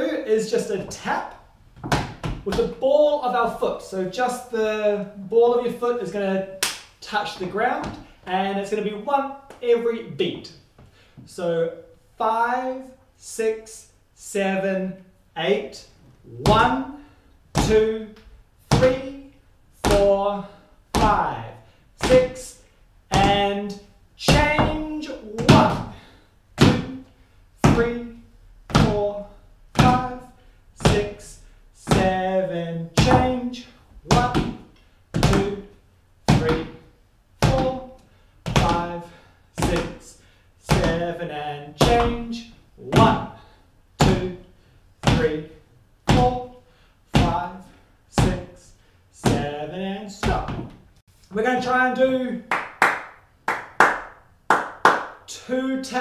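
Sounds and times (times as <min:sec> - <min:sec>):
tap shoes on wooden floor: 0:01.8 - 0:02.8, 0:07.4 - 0:08.1, 0:20.9 - 0:21.2, 0:23.1 - 0:23.5, 0:24.3 - 0:26.0, 0:26.6 - 0:26.9, 0:28.7 - 0:29.0, 0:31.8 - 0:32.2, 0:33.0 - 0:33.4, 0:34.1 - 0:35.6, 0:38.4 - 0:38.9, 0:39.6 - 0:40.0, 0:40.7 - 0:41.0, 0:41.8 - 0:42.3, 0:42.9 - 0:43.3, 0:50.2 - 0:50.8.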